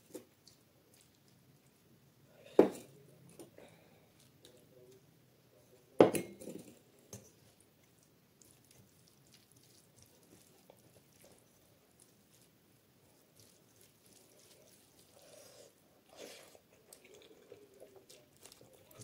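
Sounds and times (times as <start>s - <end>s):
fingers squishing food: 0.0s - 1.8s, 7.3s - 15.8s, 16.4s - 19.0s.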